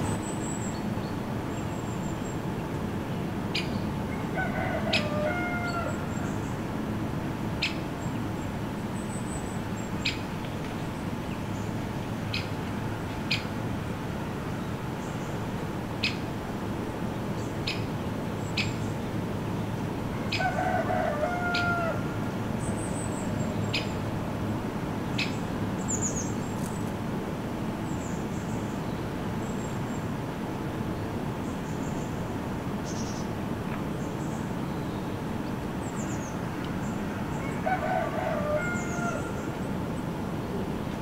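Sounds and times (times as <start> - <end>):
steady outdoor hiss: 0.0 - 41.0
rooster crowing: 4.1 - 6.4, 20.1 - 22.3, 37.0 - 39.6.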